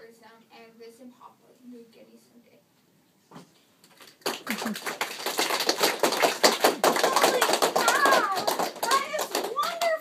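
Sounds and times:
children applauding: 3.9 - 10.0.

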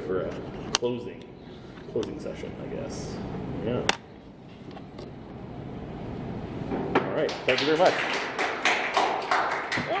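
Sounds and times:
people clapping: 7.2 - 10.0.

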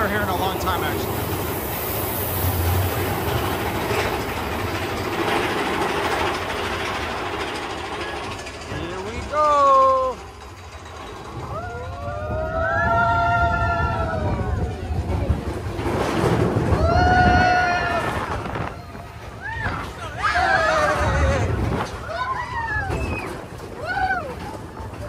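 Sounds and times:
roller coaster rumble and rattle: 0.0 - 25.0
riders whooping: 11.2 - 15.5, 16.1 - 25.0.

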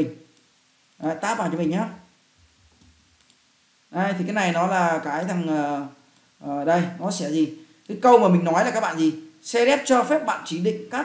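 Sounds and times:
keyboard and mouse clicks: 2.4 - 3.4.

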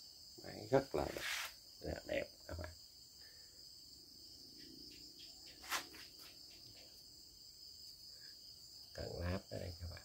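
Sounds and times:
insect chirring: 0.0 - 10.0.

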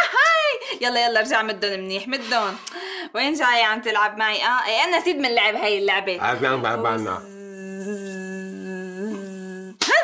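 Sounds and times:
person humming a long note: 7.2 - 9.8.

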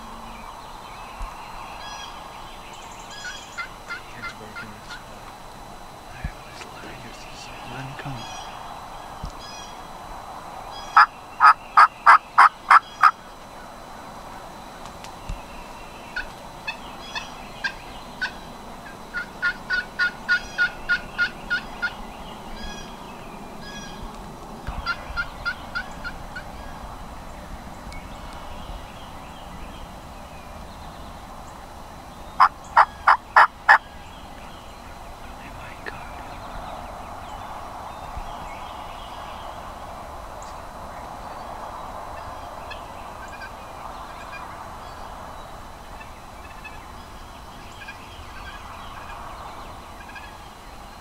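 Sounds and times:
wild turkey yelping: 3.0 - 5.1, 10.7 - 13.2, 16.2 - 22.0, 24.8 - 26.8, 32.4 - 33.9.

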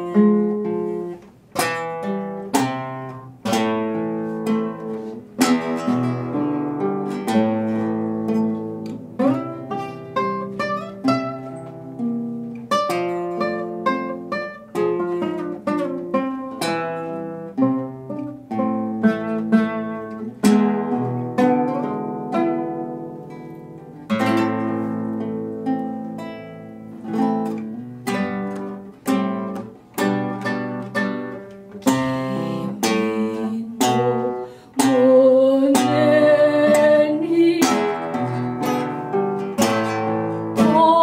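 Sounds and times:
acoustic guitars playing: 0.0 - 41.0.

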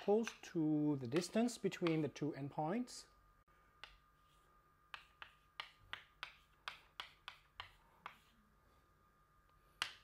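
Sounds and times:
chalk tapping on blackboard: 3.8 - 8.4, 9.7 - 10.0.

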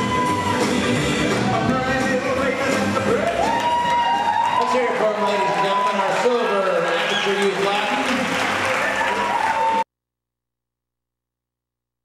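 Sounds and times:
audience applauding: 3.0 - 9.8.

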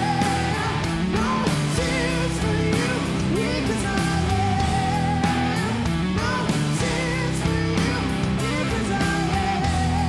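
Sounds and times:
bass guitar: 0.0 - 10.0
drums: 0.0 - 10.0
heavy electric guitar: 0.0 - 10.0
woman singing: 0.0 - 10.0.

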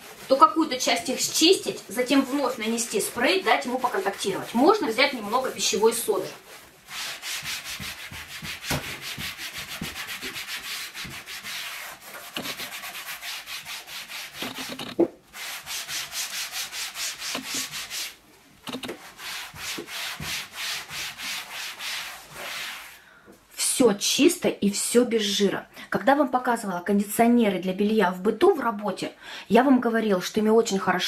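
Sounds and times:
cloth scrubbing a panel: 0.0 - 23.0.

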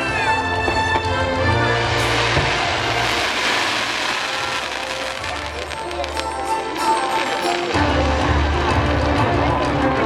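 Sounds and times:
dense hissing wash: 1.4 - 7.1.

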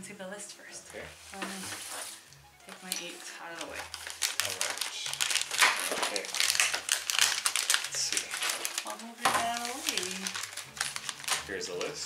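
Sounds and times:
packets sliding across a table: 1.2 - 2.3
plastic packets crinkling: 1.4 - 12.0.

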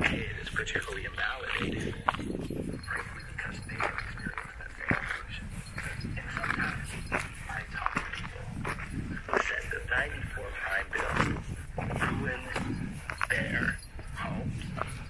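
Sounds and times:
dogs panting: 0.0 - 15.0
footsteps scuffing over loose rock: 0.0 - 15.0
paws clicking on stone: 0.0 - 15.0.

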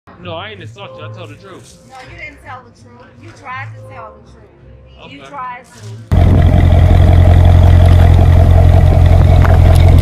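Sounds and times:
car engine running loudly: 6.1 - 10.0.

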